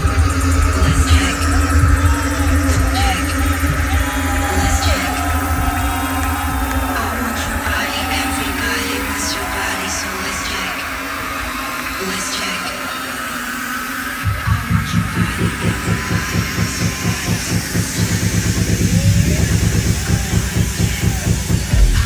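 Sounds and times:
crowd voices: 0.0 - 22.0
electronic dance music: 0.0 - 22.0.

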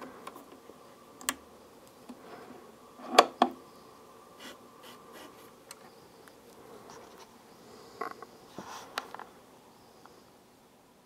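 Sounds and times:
faint turntable hum: 0.0 - 11.0.

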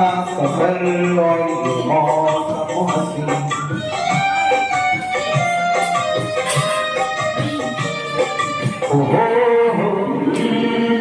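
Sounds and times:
instrumental karaoke backing track: 0.0 - 11.0.

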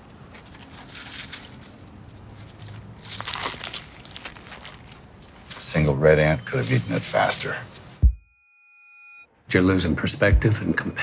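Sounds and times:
paper wrapper crinkling: 0.1 - 5.9
sandwich being bitten and eaten: 2.6 - 5.2.

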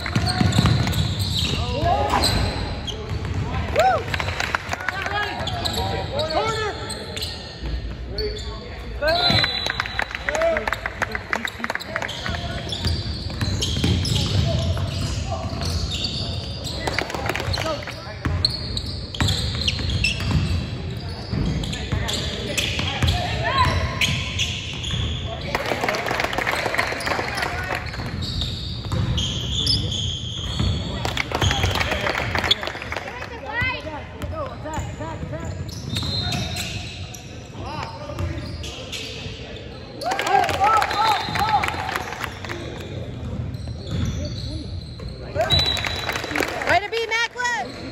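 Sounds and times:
sneakers squeaking: 0.0 - 4.2, 5.0 - 47.9.

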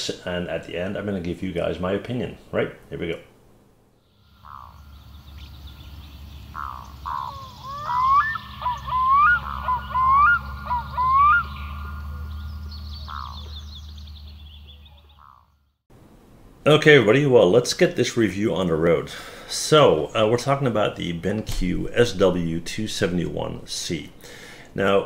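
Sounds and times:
low steady hum: 0.0 - 25.0
bird calls: 4.1 - 15.8
high chirping: 4.1 - 15.8.

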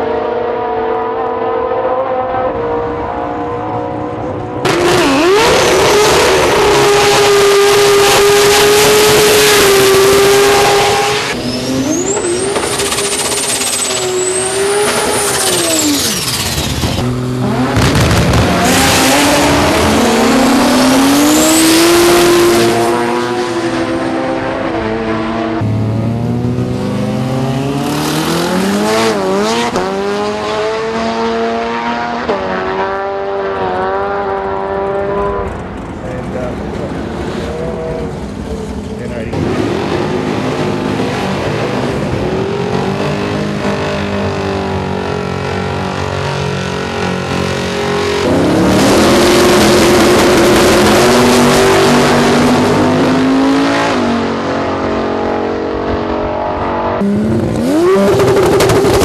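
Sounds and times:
racing car engines revving: 0.0 - 59.0.

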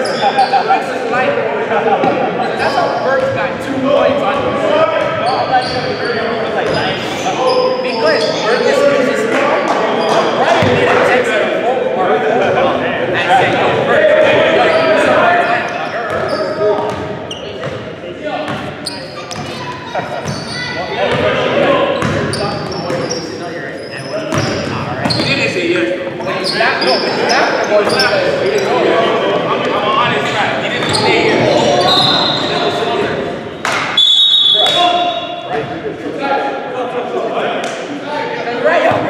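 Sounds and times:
sneaker squeaks: 0.0 - 0.9, 2.4 - 3.4, 5.0 - 8.8, 14.6 - 25.6, 26.2 - 28.8, 30.7 - 35.7.

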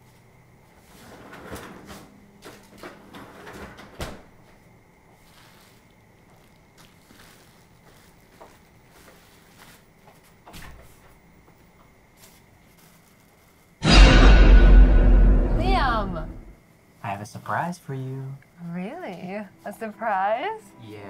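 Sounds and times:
sharp knock: 13.8 - 16.5.

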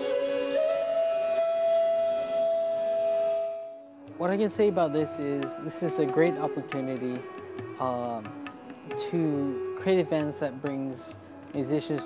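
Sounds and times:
flute holding a long note: 0.0 - 11.9.

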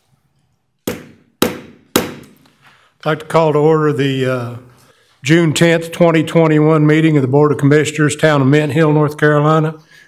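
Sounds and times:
gavel strikes: 0.8 - 2.4.

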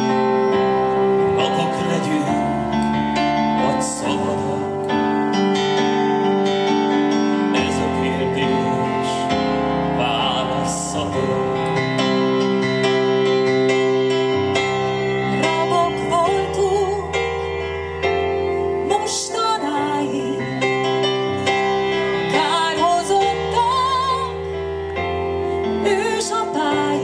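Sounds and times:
band playing slowly: 0.0 - 27.0
sustained keyboard chords: 0.0 - 27.0
woman singing with vibrato: 15.4 - 17.2, 18.8 - 20.6, 22.3 - 24.5, 25.8 - 27.0.

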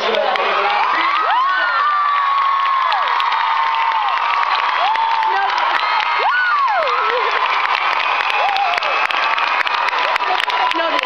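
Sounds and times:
audience screaming and cheering: 0.0 - 11.0.

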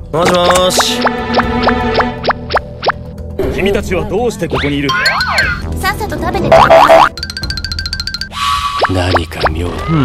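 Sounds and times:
background music: 0.0 - 10.0
cartoon buzzing crackling effect: 6.5 - 7.1.

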